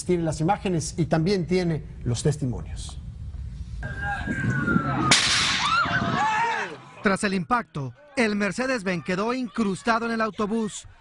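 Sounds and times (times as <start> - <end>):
falling whistling tone: 3.8 - 6.2
loud crack-like burst: 5.1 - 5.9.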